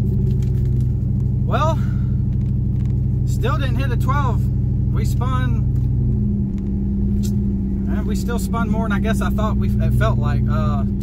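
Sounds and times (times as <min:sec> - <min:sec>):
pickup engine running low revs: 0:00.0 - 0:11.0.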